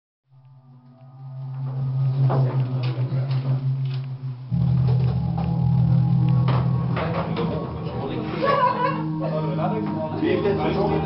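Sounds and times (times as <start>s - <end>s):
low sustained drone: 0.3s - 11.0s
drum hits: 4.5s - 8.6s.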